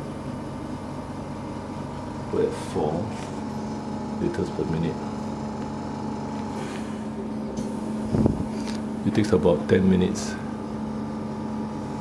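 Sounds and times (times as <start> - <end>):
machine hum: 0.0 - 12.0.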